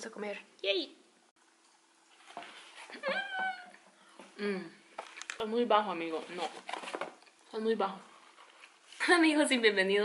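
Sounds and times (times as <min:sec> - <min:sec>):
woman squealing: 0:02.9 - 0:03.8.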